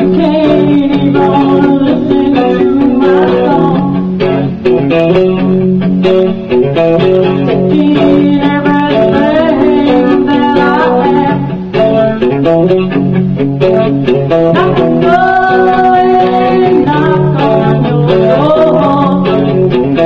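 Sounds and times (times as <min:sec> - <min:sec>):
electric guitar playing: 0:00.0 - 0:20.0.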